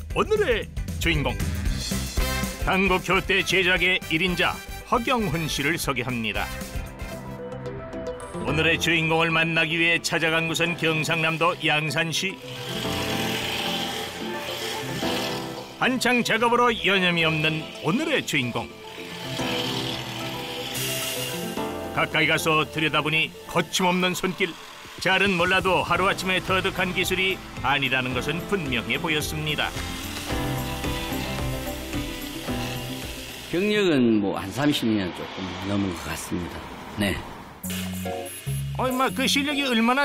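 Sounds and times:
background music: 0:00.0 - 0:40.0
wood rasping and sanding: 0:11.0 - 0:33.6
chisel scraping wood on lathe: 0:12.3 - 0:15.8, 0:17.3 - 0:21.6, 0:23.4 - 0:33.5.

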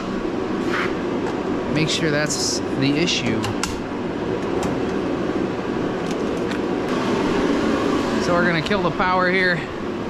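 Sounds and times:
heater roaring: 0:00.0 - 0:10.0.

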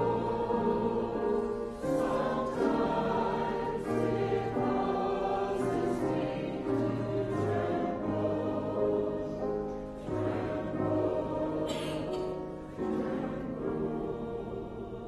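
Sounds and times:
hymn singing: 0:00.0 - 0:15.0
low held accompaniment: 0:00.0 - 0:15.0.

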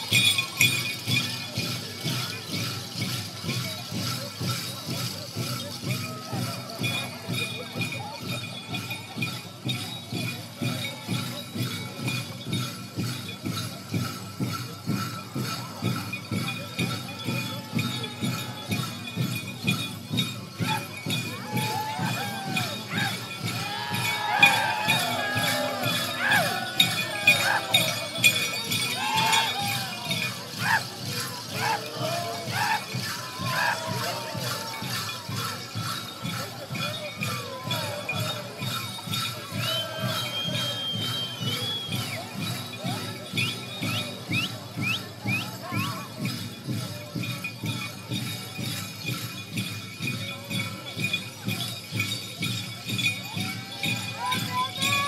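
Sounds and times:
metal bells jingling: 0:00.0 - 0:55.0
quick steady drum beat: 0:15.4 - 0:36.5
voices singing and calling out: 0:17.4 - 0:42.4.

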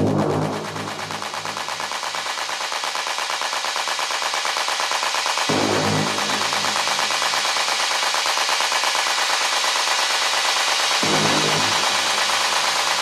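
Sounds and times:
low synth stab: 0:00.0 - 0:01.7.

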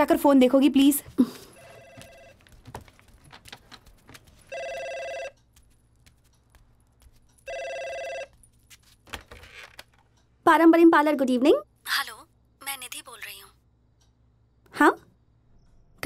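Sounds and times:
telephone ringing: 0:01.5 - 0:02.6, 0:04.5 - 0:05.5, 0:07.4 - 0:08.4.

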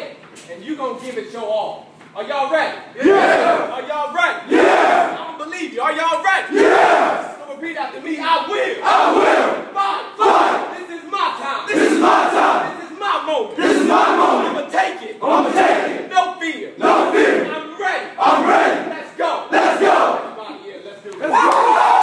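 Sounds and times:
man calling out: 0:09.7 - 0:11.8.

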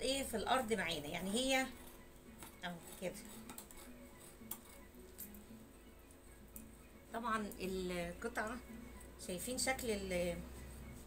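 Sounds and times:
scissors snipping fabric: 0:01.7 - 0:05.4.

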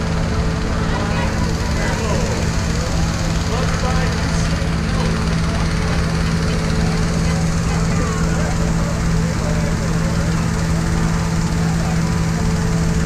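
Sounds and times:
crowd chatter: 0:00.0 - 0:13.0
gas engine fan running: 0:00.0 - 0:13.0.

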